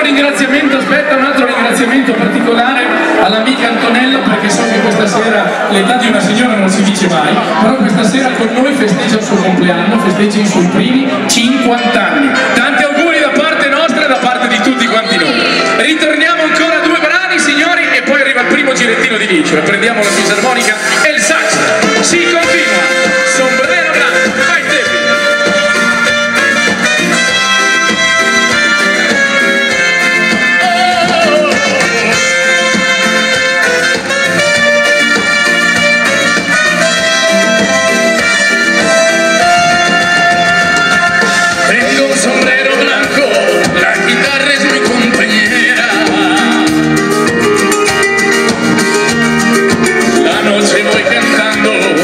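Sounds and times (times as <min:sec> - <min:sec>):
live dance-band music: 0:00.0 - 0:52.0
person singing: 0:21.6 - 0:33.8, 0:36.5 - 0:47.2.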